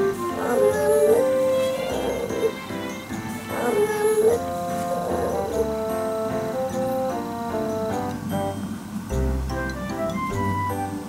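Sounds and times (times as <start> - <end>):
background music: 0.0 - 11.0
baby calling: 0.3 - 2.6, 3.4 - 5.7.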